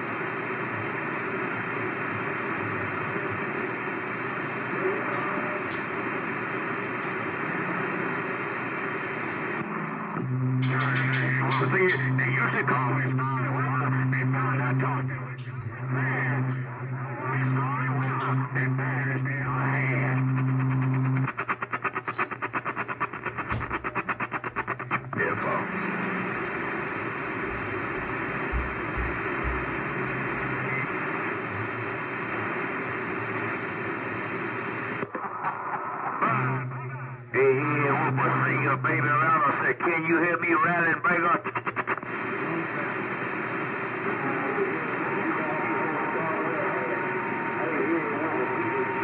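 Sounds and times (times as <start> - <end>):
hissing static: 0.0 - 49.0
garbled radio voices: 0.3 - 49.0
low hum: 10.0 - 33.0.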